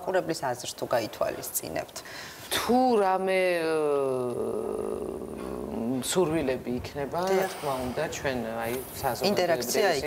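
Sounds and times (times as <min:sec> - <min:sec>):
woman speaking: 0:09.0 - 0:10.0.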